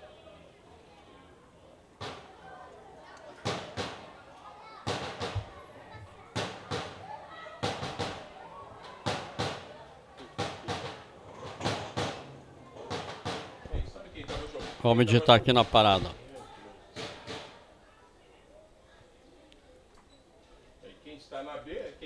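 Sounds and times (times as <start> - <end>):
voices of people: 0.0 - 22.0
sharp knocks or slaps: 2.0 - 2.3, 4.9 - 5.5, 6.4 - 7.0, 7.6 - 8.2, 9.0 - 9.7, 10.4 - 12.3, 12.9 - 14.8, 17.0 - 17.6.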